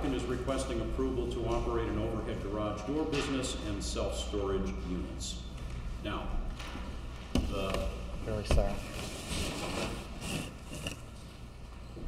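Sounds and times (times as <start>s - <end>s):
objects rustling and scraping on table: 8.5s - 11.4s.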